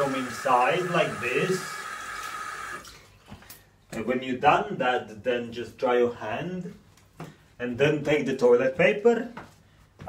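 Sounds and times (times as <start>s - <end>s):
tap water running into basin: 0.0s - 3.0s.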